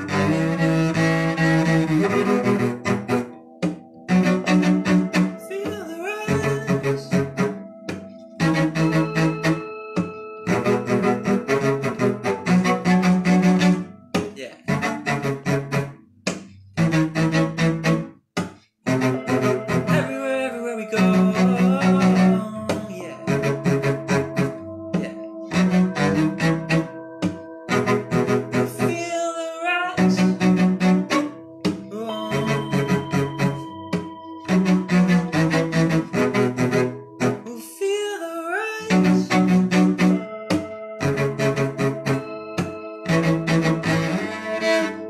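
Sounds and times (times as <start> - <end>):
bowed cello low notes: 0.0 - 18.2, 18.9 - 45.0.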